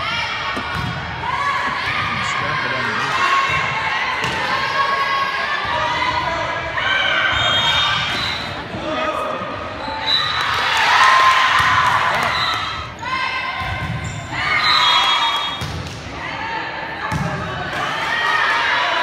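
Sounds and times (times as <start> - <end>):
people shouting and cheering: 0.0 - 15.6.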